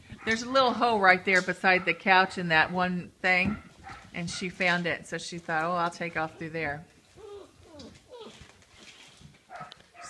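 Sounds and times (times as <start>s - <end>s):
faint scuffling: 3.6s - 10.0s
puppy yipping: 7.1s - 8.5s, 9.5s - 10.0s
puppy yelp or whine: 7.1s - 8.6s.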